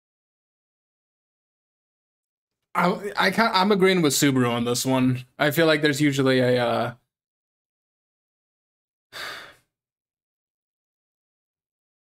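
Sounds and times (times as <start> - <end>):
man sighing: 9.2 - 9.6.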